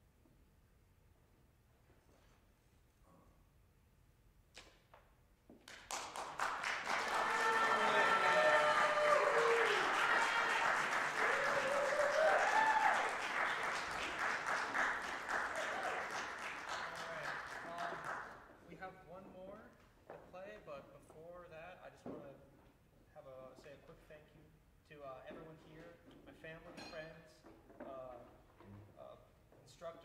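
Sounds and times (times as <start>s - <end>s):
audience applause: 5.7s - 18.4s
cheering and whoops: 6.9s - 13.9s, 15.3s - 16.3s.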